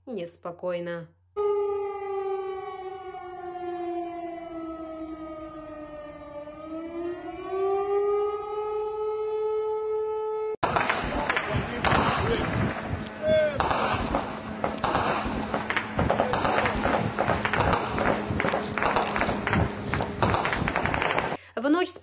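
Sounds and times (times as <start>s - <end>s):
civil defense siren wailing: 1.4s - 21.4s.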